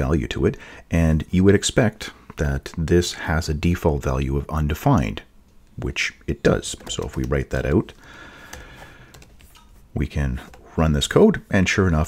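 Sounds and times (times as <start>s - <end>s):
soft keyboard keystrokes: 6.6s - 7.7s, 8.4s - 9.6s.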